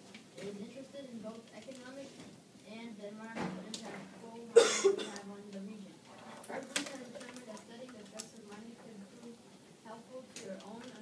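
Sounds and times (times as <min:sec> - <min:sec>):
person coughing: 0:04.6 - 0:05.2.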